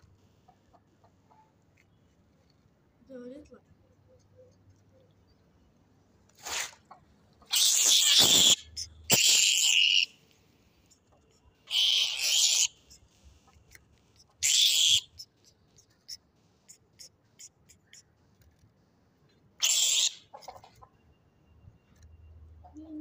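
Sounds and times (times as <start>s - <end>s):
rat screeching: 7.5s - 10.2s, 11.6s - 13.0s, 14.2s - 15.3s, 19.6s - 20.4s.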